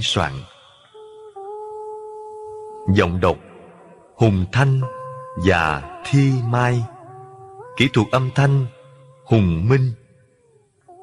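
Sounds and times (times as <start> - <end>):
soft background music: 0.0 - 10.2.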